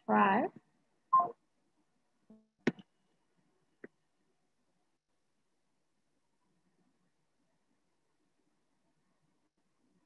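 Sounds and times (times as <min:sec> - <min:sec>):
person's voice through video call: 0:00.0 - 0:00.6.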